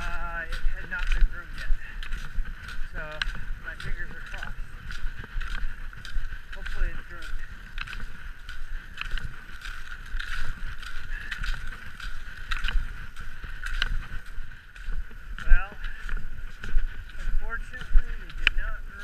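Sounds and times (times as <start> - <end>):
ski poles stroking on snow: 0.0 - 19.0.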